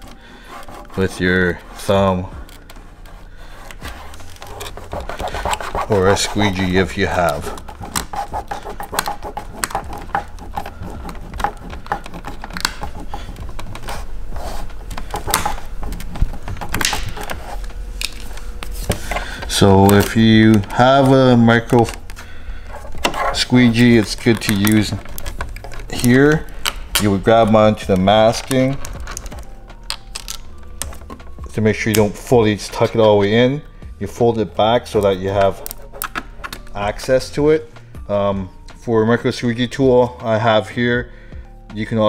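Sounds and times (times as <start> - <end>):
film clicking and rubbing on plastic: 0.0 - 33.2, 34.7 - 37.3.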